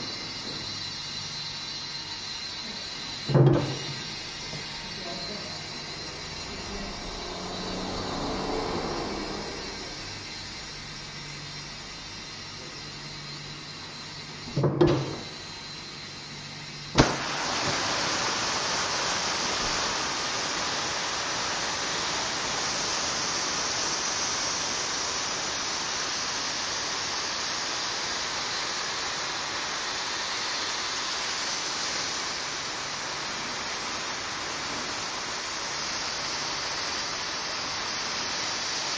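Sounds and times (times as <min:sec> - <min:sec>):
compressed air hissing: 0:00.0 - 0:11.2, 0:17.0 - 0:38.9.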